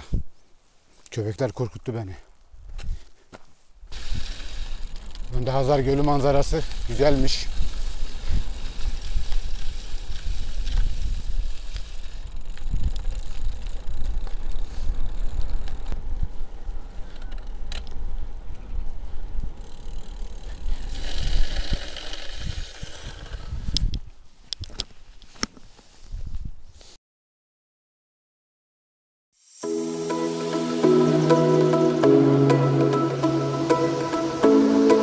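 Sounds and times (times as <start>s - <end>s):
bike tyre noise: 2.6s - 27.0s
bright hiss: 3.9s - 5.0s, 29.4s - 35.0s
wind buffeting microphone: 6.6s - 19.6s, 20.4s - 24.8s.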